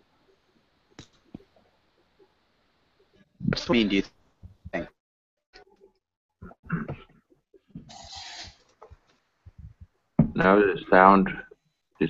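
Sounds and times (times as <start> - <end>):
burst of hiss: 7.9 - 8.6.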